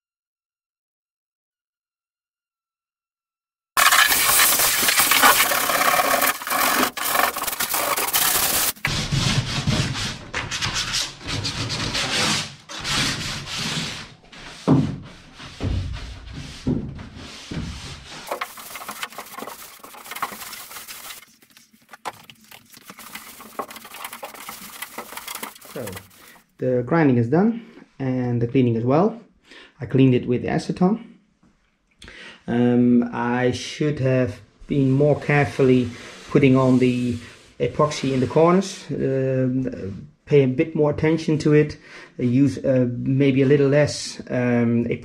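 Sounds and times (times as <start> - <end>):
hand rubbing strokes: 3.8 - 8.8, 17.2 - 26.5.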